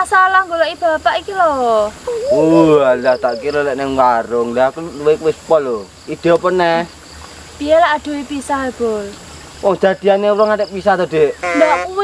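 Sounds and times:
high-pitched insect drone: 1.5s - 7.2s, 10.4s - 12.0s
man speaking: 2.3s - 6.8s.

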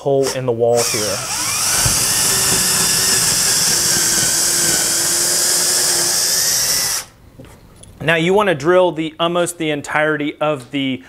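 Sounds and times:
cordless drill boring into wood: 0.2s - 7.2s.

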